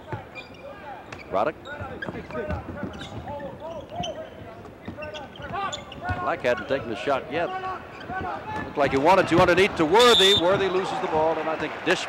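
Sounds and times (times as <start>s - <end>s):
voices in an arena: 0.0s - 12.0s.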